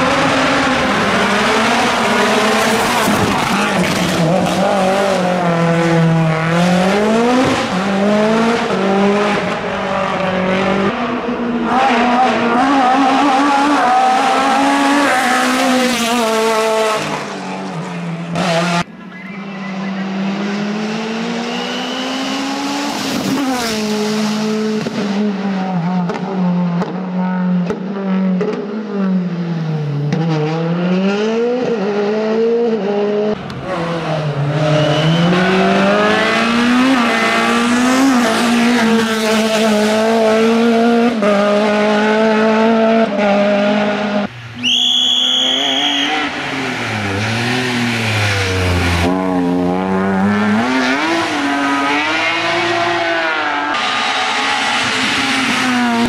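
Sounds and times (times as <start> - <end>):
race car engines at full throttle: 0.0 - 56.0.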